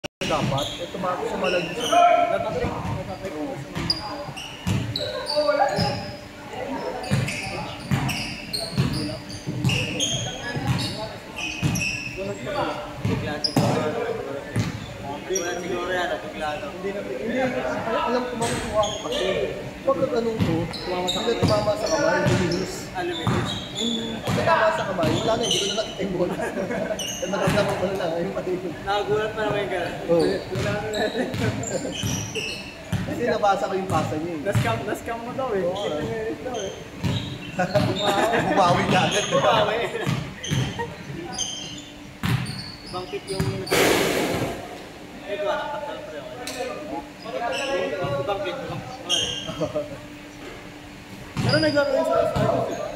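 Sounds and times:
sneakers squeaking on court: 0.2 - 16.0, 18.2 - 26.1, 26.9 - 28.0, 29.5 - 34.9, 35.7 - 43.8, 47.1 - 49.6, 50.3 - 52.9
voices talking: 0.2 - 52.9
basketballs bouncing on hardwood: 4.6 - 4.9, 8.8 - 9.8, 10.5 - 10.8, 42.2 - 42.5.

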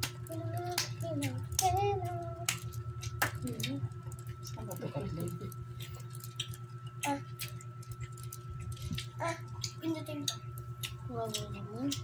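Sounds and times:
low steady hum: 0.0 - 12.0
child singing: 0.2 - 2.6.

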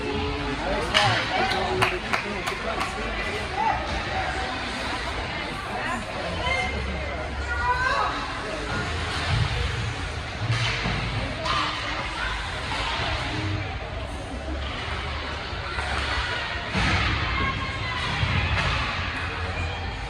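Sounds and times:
spectators' voices and calls: 0.0 - 20.0.

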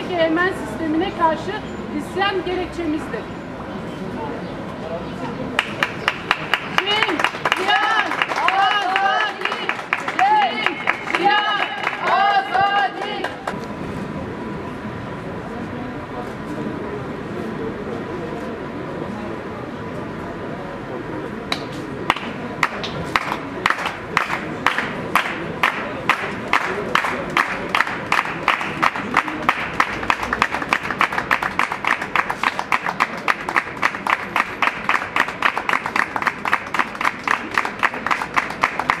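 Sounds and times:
voices of group: 0.0 - 39.0
group clapping in unison: 5.5 - 13.6, 21.5 - 39.0.

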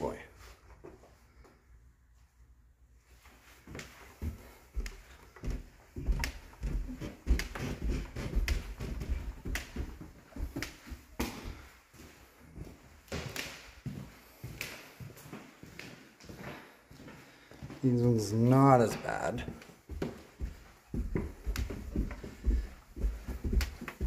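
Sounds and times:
footsteps on stairs and floor: 0.0 - 24.0.

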